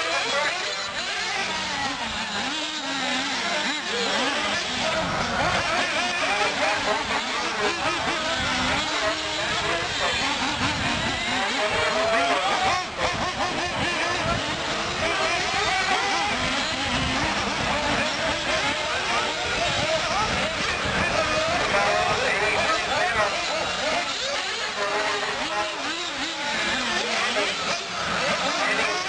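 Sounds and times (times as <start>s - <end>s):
rc buggy motors whining: 0.0s - 29.0s.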